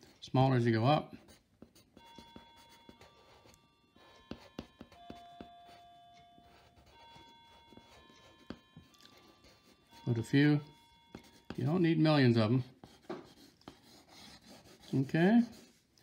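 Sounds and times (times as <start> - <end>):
faint held musical tones: 0.0 - 16.0
pencil scratching on paper: 1.2 - 5.8, 6.4 - 10.1, 11.1 - 11.8, 12.6 - 15.9.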